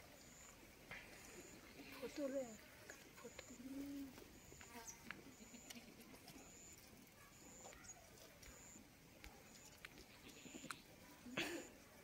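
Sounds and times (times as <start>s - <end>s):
faint clicks: 7.6s - 10.9s.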